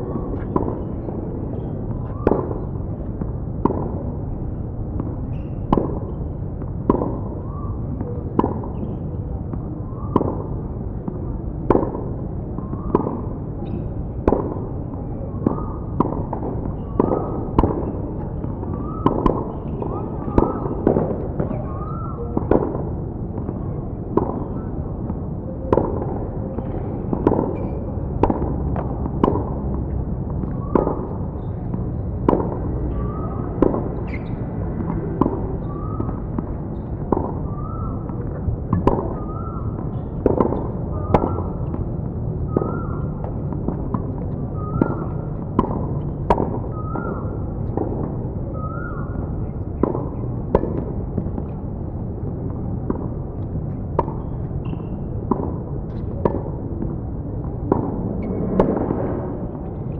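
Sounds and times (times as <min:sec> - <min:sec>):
tennis rackets hitting balls: 0:00.2 - 0:59.9.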